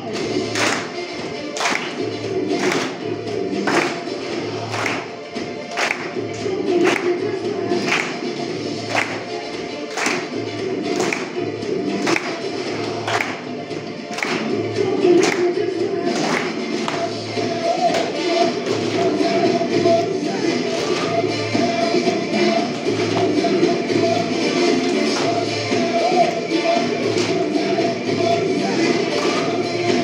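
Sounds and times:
children clapping in unison: 0:00.0 - 0:25.5, 0:26.2 - 0:30.0
music with singing: 0:00.0 - 0:30.0.

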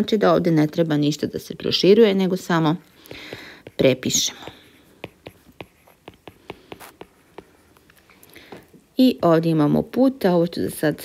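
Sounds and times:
stylus tapping on drawing tablet: 0:03.1 - 0:07.9.

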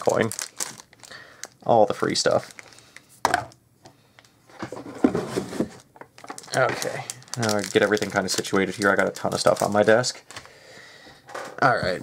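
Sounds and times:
rustling and small knocks of items: 0:03.2 - 0:10.5.

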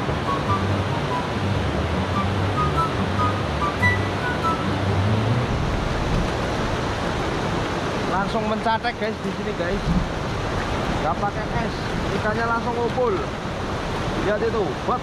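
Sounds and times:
background music with bass line: 0:00.0 - 0:05.6
river rushing over rocks: 0:00.0 - 0:15.0.

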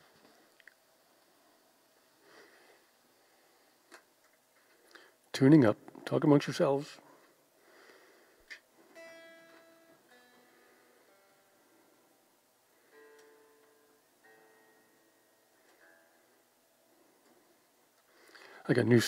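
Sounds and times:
electric guitar strings plucked: 0:08.9 - 0:15.0.

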